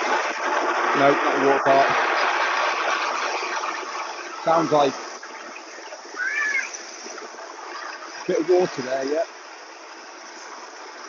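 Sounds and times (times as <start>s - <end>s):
geyser water rushing: 0.0s - 11.0s.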